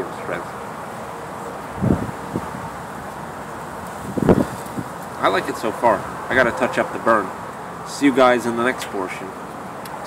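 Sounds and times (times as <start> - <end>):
wind hiss: 0.0 - 10.0.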